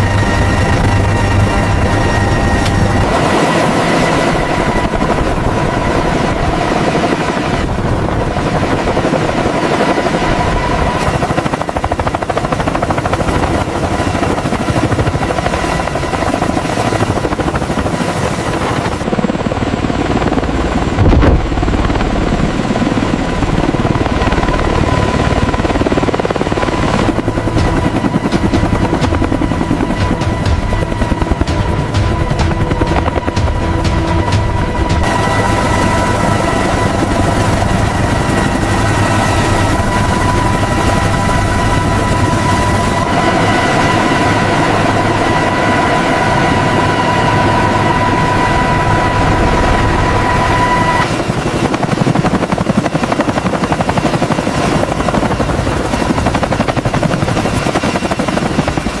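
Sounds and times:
music: 0.0s - 7.6s, 19.2s - 51.0s
helicopter rotors and turbines: 0.0s - 59.0s
low thump: 21.0s - 21.8s.

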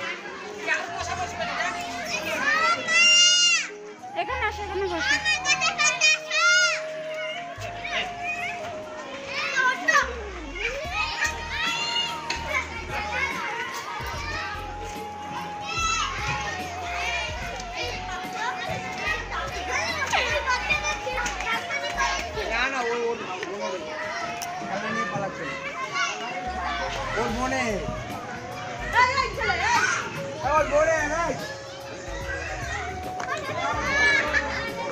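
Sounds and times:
children shouting and shrieking: 0.0s - 34.9s
crowd chatter: 0.0s - 34.9s.

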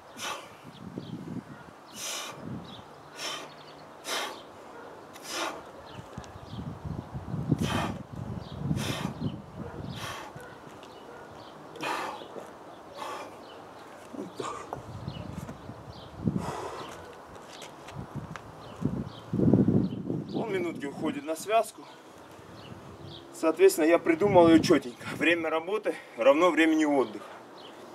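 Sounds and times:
man breathing heavily: 0.1s - 5.8s, 7.4s - 10.6s, 11.6s - 14.9s, 16.2s - 17.2s.

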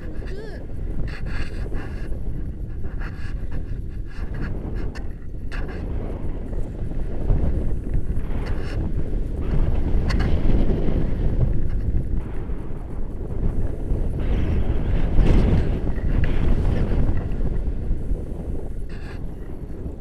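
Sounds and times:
wind buffeting microphone: 0.0s - 20.0s.

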